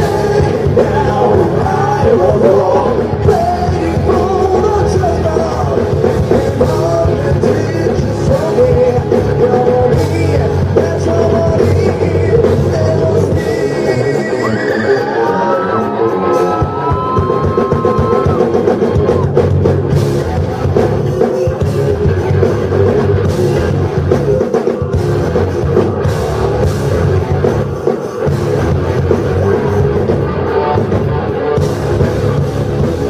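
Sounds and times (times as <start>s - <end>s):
electric guitar lead notes: 0.0s - 33.0s
rock band playing live: 0.0s - 33.0s.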